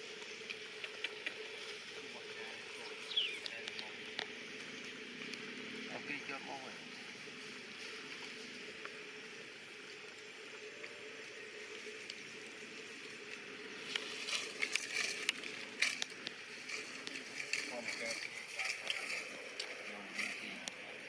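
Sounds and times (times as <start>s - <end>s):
forest background: 0.0s - 21.0s
dry leaves crackling and rustling: 5.9s - 21.0s.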